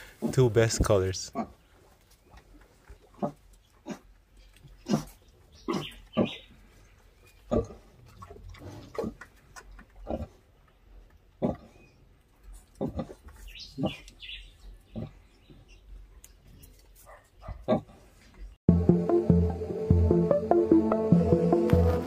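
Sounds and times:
pigs grunting: 1.2s - 1.6s, 3.1s - 4.2s, 4.8s - 6.5s, 7.4s - 10.5s, 11.3s - 11.8s, 12.7s - 14.2s, 14.8s - 15.4s, 17.4s - 18.1s.

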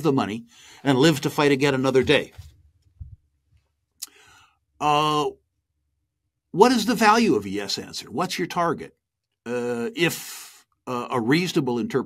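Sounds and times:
faint breath: 0.5s - 0.9s, 4.1s - 4.6s
man saying uh: 4.8s - 5.3s, 9.5s - 12.0s.

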